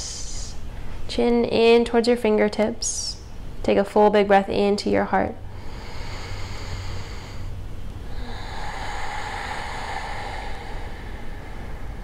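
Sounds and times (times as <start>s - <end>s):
woman breathing in and out: 5.4s - 12.0s.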